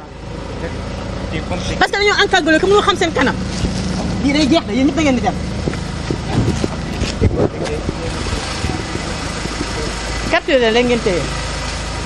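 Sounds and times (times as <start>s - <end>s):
van engine droning: 0.0s - 12.0s.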